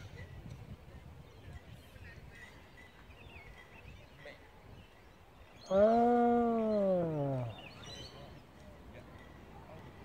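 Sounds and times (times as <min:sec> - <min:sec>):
person's drawn-out uhh voice: 0:05.7 - 0:07.5.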